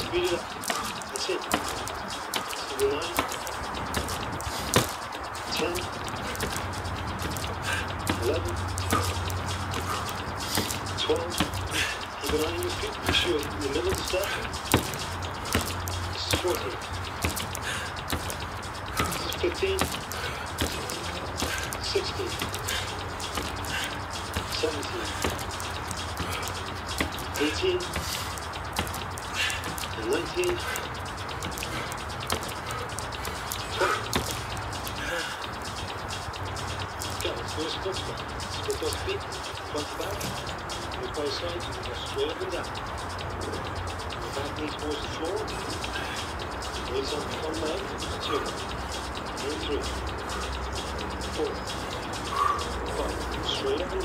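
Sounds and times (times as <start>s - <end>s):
bare feet tapping on cardboard: 0.0s - 39.2s
steady low drone: 0.0s - 54.0s.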